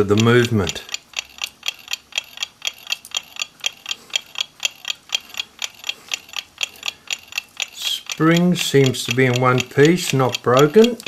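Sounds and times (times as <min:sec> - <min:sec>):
clock ticking: 0:00.0 - 0:11.0.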